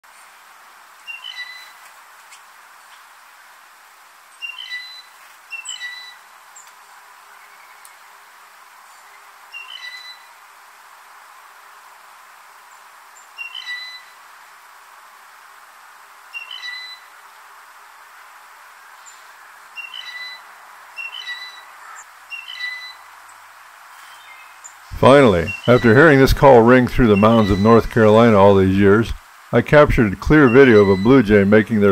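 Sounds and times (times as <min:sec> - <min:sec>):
faint steady hiss: 0:00.0 - 0:31.9
blue jay squeaky call: 0:01.0 - 0:01.8, 0:04.4 - 0:06.2, 0:09.5 - 0:10.3, 0:13.4 - 0:14.2, 0:16.3 - 0:17.1, 0:19.8 - 0:23.1, 0:25.5 - 0:26.0, 0:27.2 - 0:27.9, 0:30.5 - 0:31.1.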